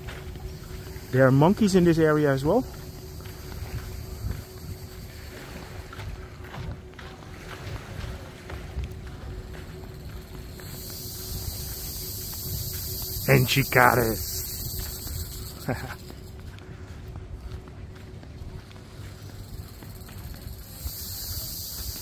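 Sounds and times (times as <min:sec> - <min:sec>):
footsteps on sand: 0:00.0 - 0:22.0
wind rumble on microphone: 0:00.0 - 0:22.0
high insect shrill: 0:00.5 - 0:05.3, 0:10.2 - 0:16.1, 0:19.9 - 0:22.0.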